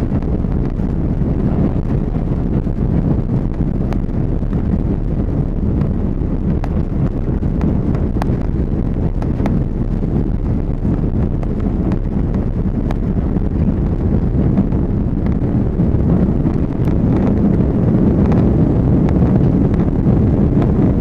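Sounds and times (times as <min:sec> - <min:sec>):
low rumble of jet engines: 0:00.0 - 0:21.0.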